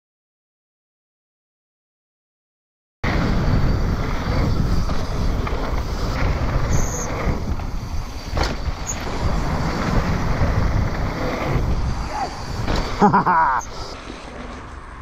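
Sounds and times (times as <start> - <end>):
wind buffeting microphone: 3.0 - 14.0
bike rolling on dirt trail: 3.0 - 15.0.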